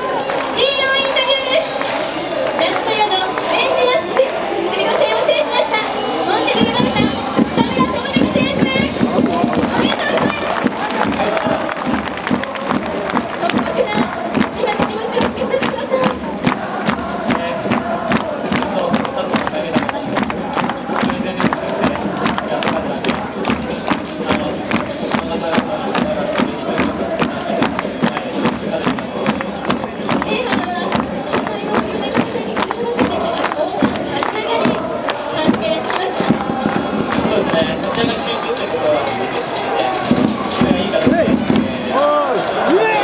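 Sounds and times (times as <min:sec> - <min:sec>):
football crowd chanting: 0:00.0 - 0:43.0
rhythmic sharp beats: 0:00.0 - 0:43.0.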